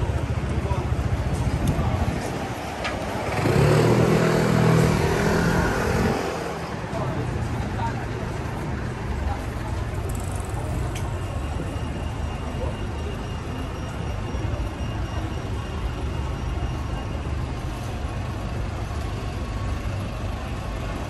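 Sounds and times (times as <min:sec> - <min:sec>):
street traffic hum: 0:00.0 - 0:21.0.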